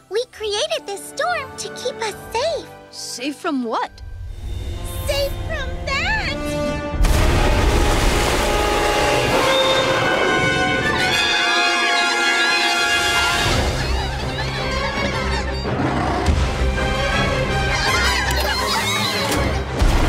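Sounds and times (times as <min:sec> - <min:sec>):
dramatic music: 0:00.5 - 0:20.0
loud rumbling crash: 0:07.0 - 0:11.0.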